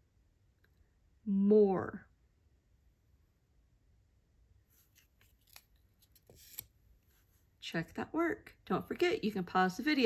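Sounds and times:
paper card rustling: 4.7 - 7.5.

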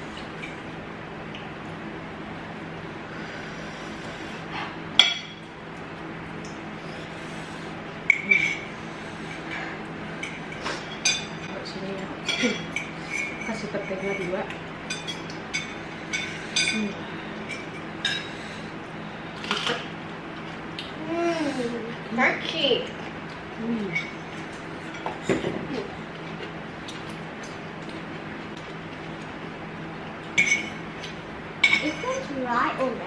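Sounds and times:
forks clinking against bowls: 8.1 - 8.7, 10.2 - 11.6, 12.2 - 18.3, 23.9 - 25.5, 30.4 - 32.3.

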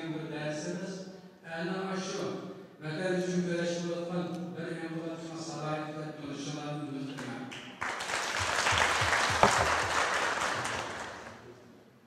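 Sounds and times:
audience applause: 7.8 - 11.4.

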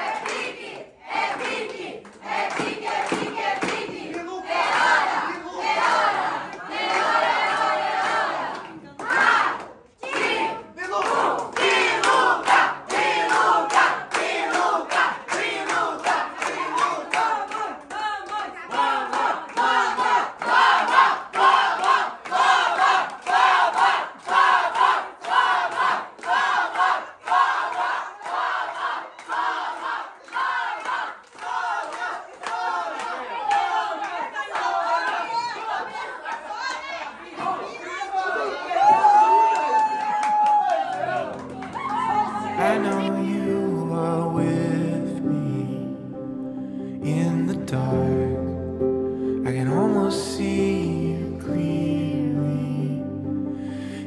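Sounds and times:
rhythmic hand clapping: 0.0 - 36.5, 39.5 - 43.5
family singing a celebration song: 0.0 - 39.0, 41.0 - 46.0.

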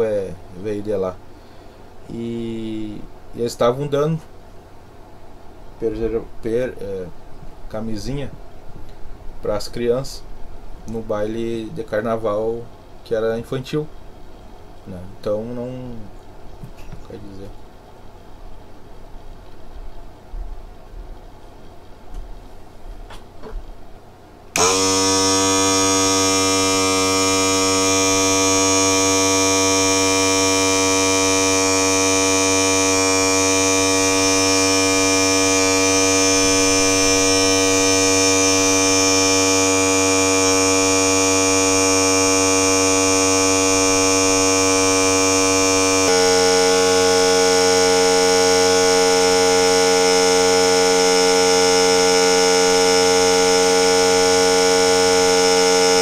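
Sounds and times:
air compressor buzzing hum: 0.0 - 13.0, 20.1 - 56.0.

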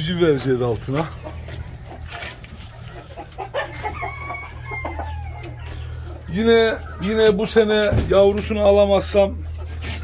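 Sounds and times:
chickens clucking: 0.0 - 10.0
rooster crowing: 3.6 - 5.7.

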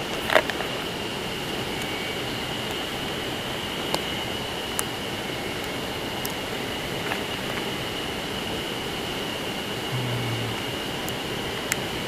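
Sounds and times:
steady outdoor hiss: 0.0 - 12.0.

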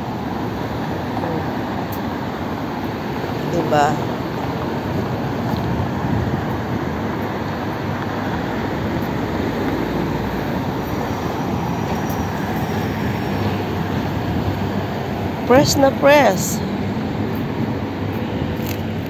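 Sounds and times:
continuous low outdoor rumble: 0.0 - 19.0.

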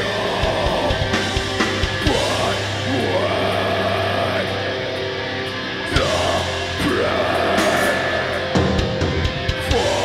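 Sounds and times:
bass guitar holding chord: 0.0 - 10.0
distorted electric guitars: 0.0 - 10.0.

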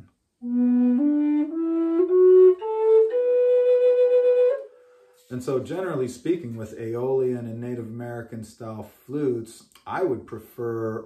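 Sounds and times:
wooden flute playing slowly: 0.4 - 5.3.

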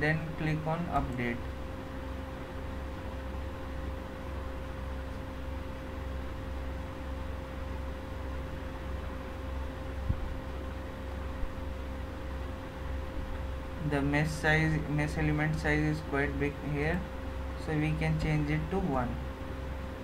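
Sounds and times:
faint constant tone: 0.0 - 20.0
low hum and hiss: 0.0 - 20.0.

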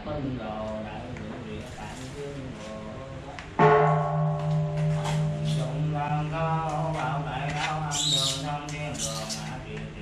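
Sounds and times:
temple bell ringing: 3.6 - 7.2.

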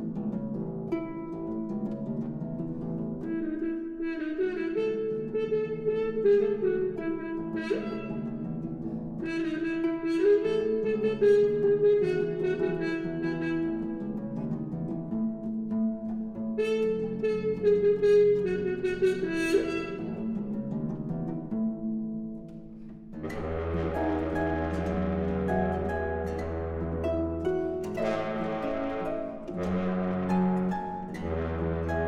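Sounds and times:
harp: 0.0 - 32.0
french horn: 3.3 - 8.3, 9.2 - 14.0, 16.6 - 20.3, 23.2 - 32.0.

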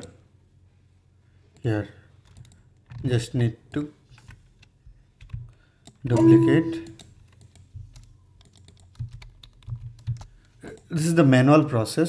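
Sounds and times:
keyboard and mouse clicks: 4.2 - 10.9.

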